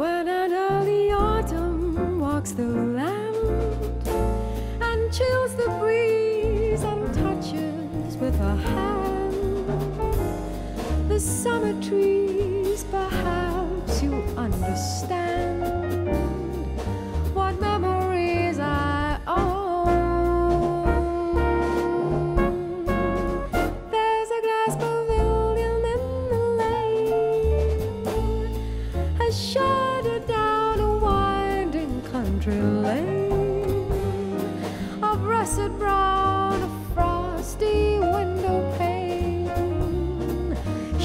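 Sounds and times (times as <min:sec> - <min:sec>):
double bass notes: 0:00.0 - 0:41.0
jazz band playing: 0:00.0 - 0:41.0.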